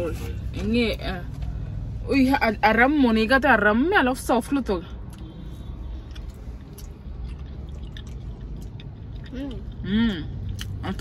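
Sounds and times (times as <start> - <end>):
steady low rumble: 0.0 - 11.0
chewing and wet mouth clicks: 5.0 - 11.0.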